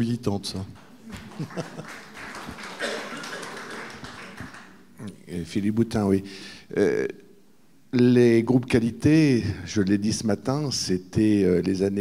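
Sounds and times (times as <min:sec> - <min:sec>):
audience murmuring: 0:01.0 - 0:04.8
audience laughing: 0:01.1 - 0:04.7.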